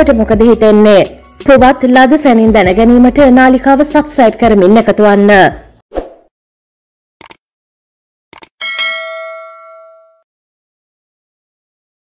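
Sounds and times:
notification bell chime: 8.6s - 10.2s.

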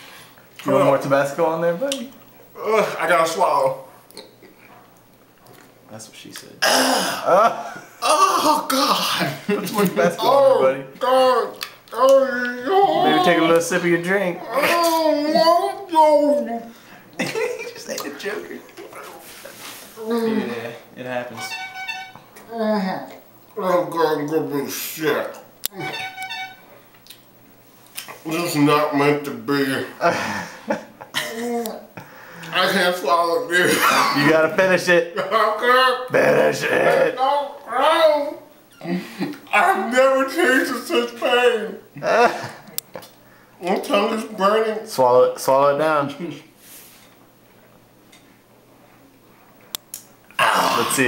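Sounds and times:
man whimpering in pain: 12.2s - 13.5s.

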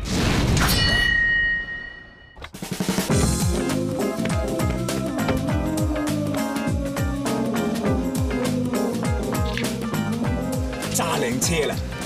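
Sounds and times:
bright metallic ding: 0.7s - 2.4s.

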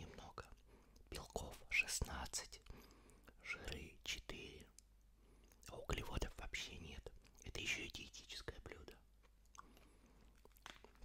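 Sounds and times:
man whispering: 0.0s - 4.9s, 5.5s - 9.1s.

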